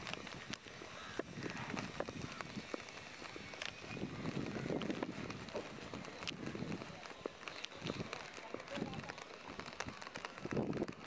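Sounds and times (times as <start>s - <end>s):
footsteps on wet pavement: 0.0s - 11.0s
outdoor hiss: 0.0s - 11.0s.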